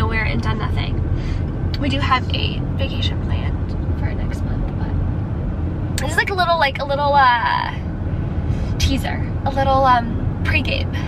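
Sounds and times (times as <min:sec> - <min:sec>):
car interior road and engine rumble: 0:00.0 - 0:11.0.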